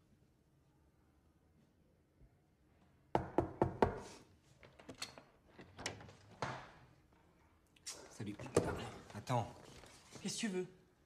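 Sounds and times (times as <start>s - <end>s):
knocks on a door: 3.1s - 4.0s.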